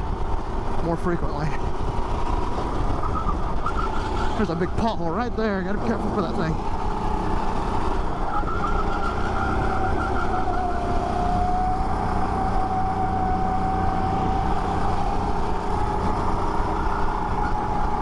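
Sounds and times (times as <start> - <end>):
go-kart engine racing: 0.0 - 18.0
wind noise: 0.0 - 18.0.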